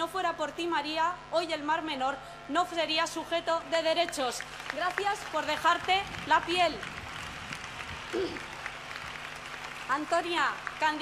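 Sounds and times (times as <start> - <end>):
audience applause: 3.8 - 11.0.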